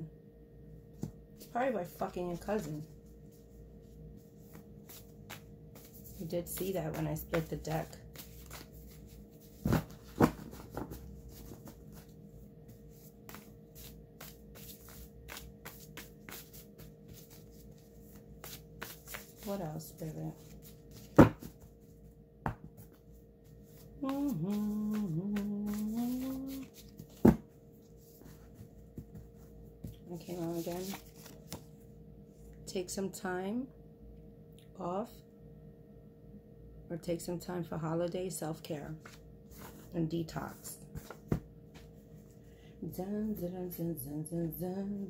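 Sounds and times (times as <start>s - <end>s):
woman singing short phrase: 24.0s - 26.7s.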